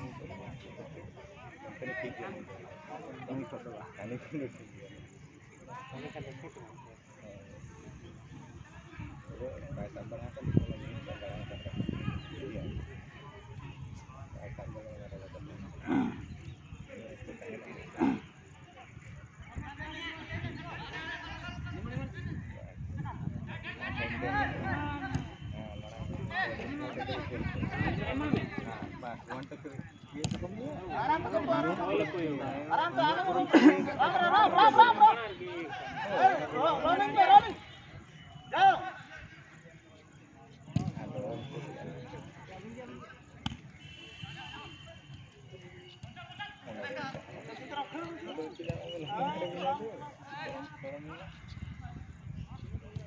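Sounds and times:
spectators talking and calling out: 0:00.0 - 0:52.8
football being kicked: 0:30.1 - 0:30.5, 0:40.7 - 0:41.2.

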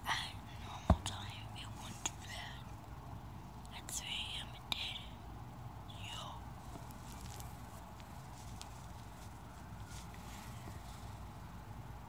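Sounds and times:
person whispering: 0:00.0 - 0:02.7, 0:03.7 - 0:05.2, 0:05.9 - 0:06.5.

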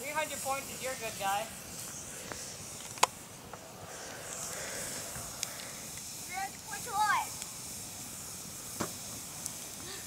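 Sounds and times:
sharp fire crackle: 0:00.0 - 0:10.0
wood fire hissing: 0:00.0 - 0:10.0.

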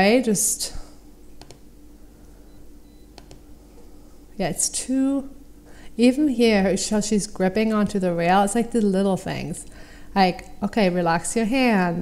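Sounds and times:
low room tone hum: 0:00.0 - 0:12.0
computer mouse clicks: 0:01.4 - 0:01.6, 0:03.1 - 0:03.4.

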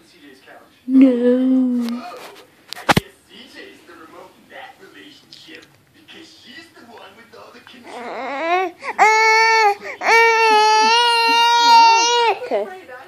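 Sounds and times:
baby crying: 0:07.8 - 0:12.6.

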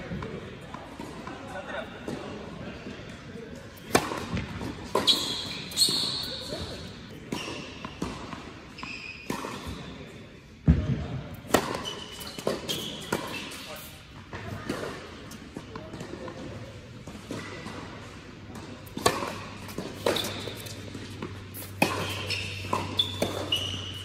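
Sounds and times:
tennis racket hitting ball: 0:03.8 - 0:05.2, 0:18.5 - 0:23.9
tennis ball bouncing on hard court: 0:03.8 - 0:05.7, 0:06.5 - 0:09.9, 0:10.6 - 0:13.5, 0:14.2 - 0:24.0.

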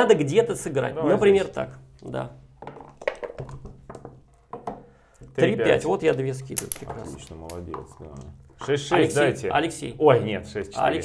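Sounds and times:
dice rattling in cup and board: 0:06.5 - 0:08.0.

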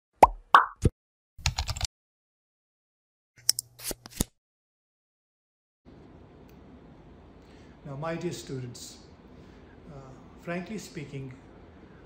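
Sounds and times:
cartoon pops: 0:00.2 - 0:00.9.

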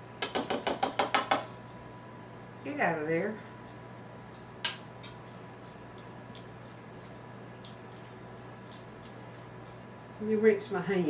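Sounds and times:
whisk tapping against a bowl: 0:04.3 - 0:09.8.

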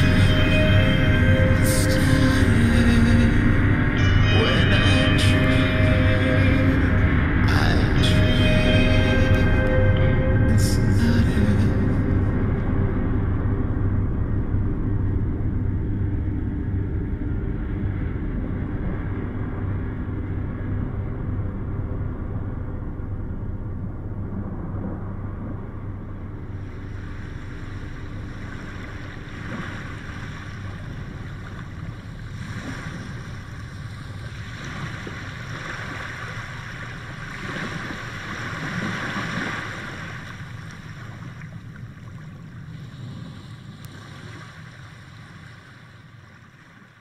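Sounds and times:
rumbling noise drone: 0:00.0 - 0:47.0.

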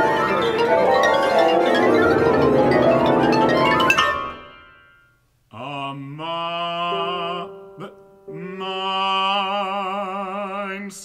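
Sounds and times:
man singing operatically: 0:05.5 - 0:11.0.

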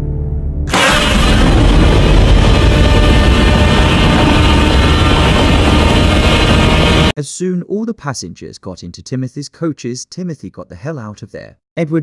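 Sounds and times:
low rumble: 0:00.7 - 0:07.1
monster roar: 0:00.7 - 0:07.1.

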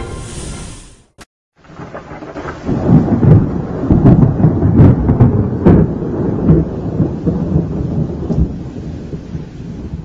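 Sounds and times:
sharp thunder cracks: 0:01.6 - 0:10.0
thunder rumbling: 0:01.6 - 0:10.0.

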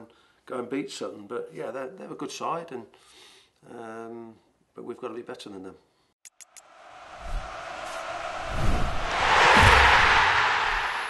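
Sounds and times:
low thuds: 0:07.2 - 0:11.0.

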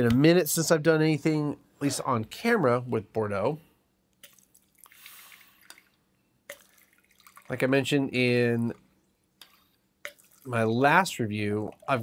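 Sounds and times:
wine pouring into a glass: 0:04.4 - 0:07.9, 0:10.1 - 0:10.6.

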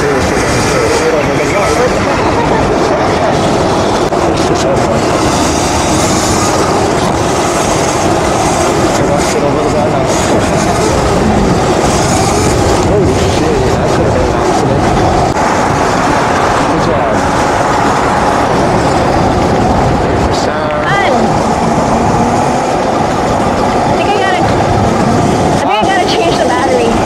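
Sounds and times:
wind rushing over microphone: 0:00.0 - 0:27.0.

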